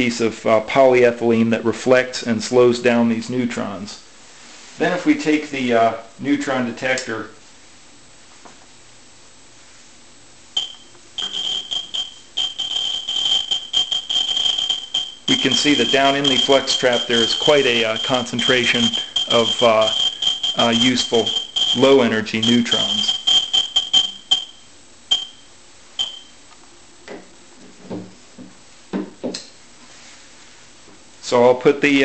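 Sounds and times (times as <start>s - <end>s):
radiation counter beeping: 10.6s - 26.4s.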